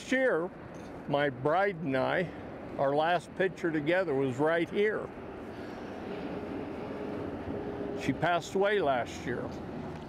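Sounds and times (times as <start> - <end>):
distant engine noise: 0.0 - 10.0.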